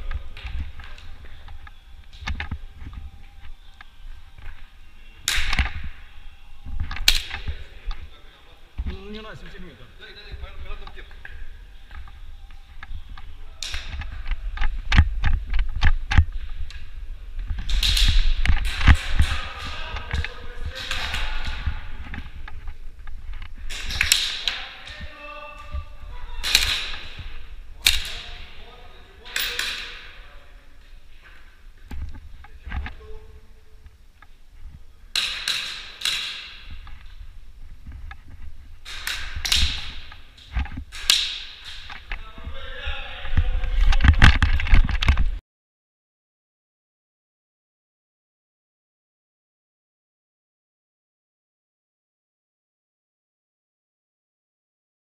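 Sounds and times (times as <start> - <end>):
pellets hitting barriers: 17.5 - 22.4, 23.6 - 32.1, 35.1 - 37.2, 38.8 - 42.5
people shouting: 24.4 - 27.2
airsoft guns firing: 26.4 - 28.6, 35.2 - 36.7, 40.9 - 41.9.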